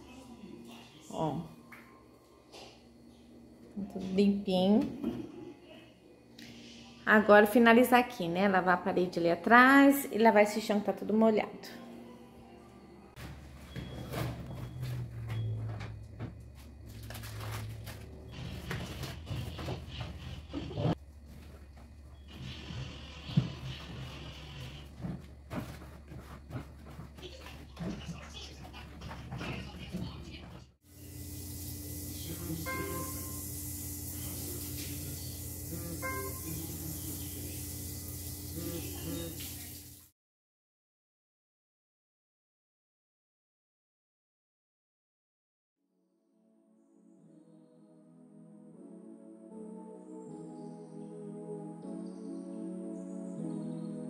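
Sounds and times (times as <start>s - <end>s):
steady hissing with held tones: 30.9s - 40.1s.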